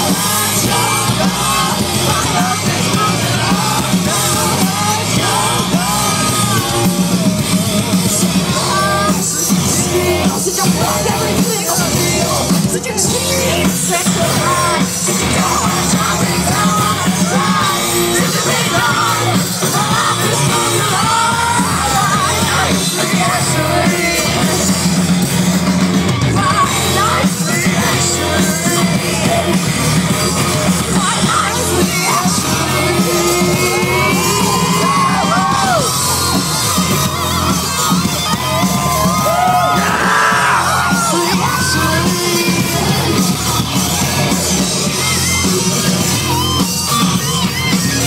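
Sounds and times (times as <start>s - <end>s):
crowd yelling: 0.0s - 48.0s
drums: 0.0s - 48.0s
electric guitar: 0.0s - 48.0s
rock band playing live: 0.0s - 48.0s
woman singing: 8.5s - 24.5s, 26.2s - 29.6s.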